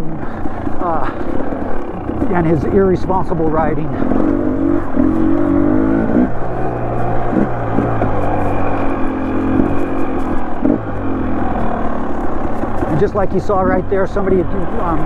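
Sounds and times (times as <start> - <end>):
dirt bike engine revving: 0.0 - 15.0.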